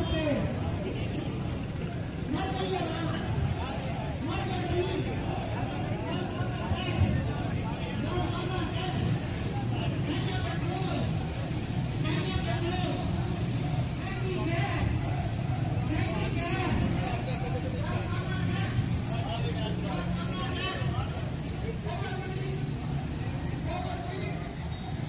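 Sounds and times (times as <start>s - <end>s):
chatter of many people: 0.0s - 25.0s
motorcycle engines running: 0.0s - 25.0s.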